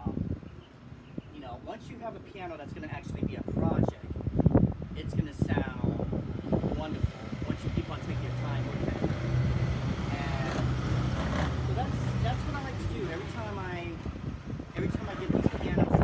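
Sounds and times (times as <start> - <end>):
vehicle engine passing: 6.2 - 15.6.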